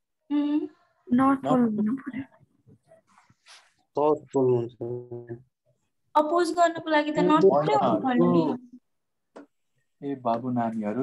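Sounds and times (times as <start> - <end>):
man speaking: 4.0 - 5.5, 7.2 - 8.7, 10.0 - 11.0.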